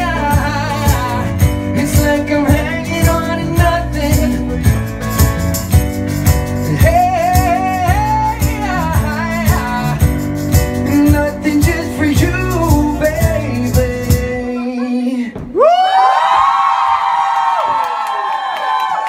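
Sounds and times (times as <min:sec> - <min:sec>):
male singer holding long notes: 0:00.0 - 0:04.7, 0:06.7 - 0:10.1, 0:10.8 - 0:15.4
live pop band playing: 0:00.0 - 0:15.4.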